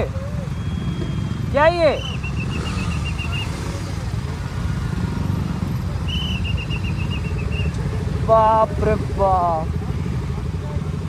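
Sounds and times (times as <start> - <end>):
motorcycle engines idling: 0.0 - 11.0
shrill trilling whistle: 0.5 - 3.6, 6.1 - 7.8.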